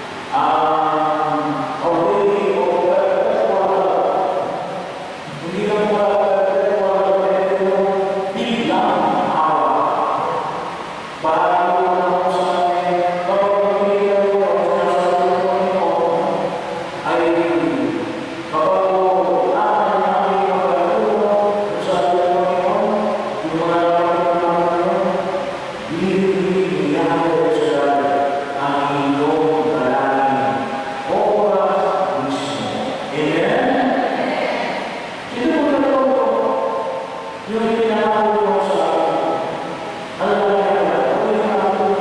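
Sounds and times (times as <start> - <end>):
amplified man chanting prayer: 0.0 - 42.0.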